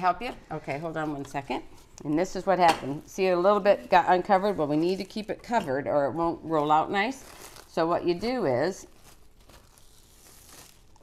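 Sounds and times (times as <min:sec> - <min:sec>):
plastic wrap crinkling: 0:01.0 - 0:11.0.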